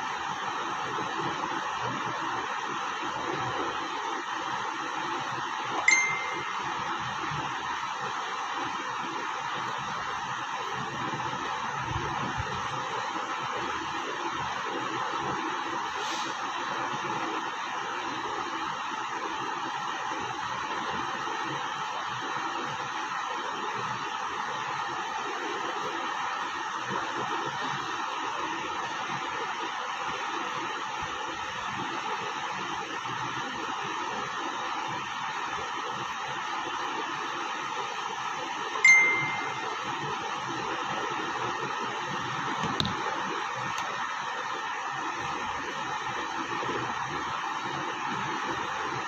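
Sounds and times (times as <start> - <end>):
bright ding: 5.8 - 6.8, 38.8 - 39.8.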